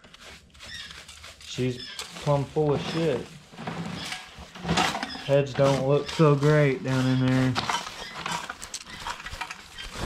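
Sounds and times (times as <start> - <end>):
stiff brush scrubbing metal: 0.0 - 10.0.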